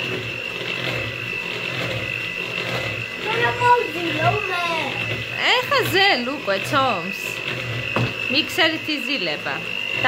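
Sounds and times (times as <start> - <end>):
electric hand mixer whining: 0.0 - 10.0.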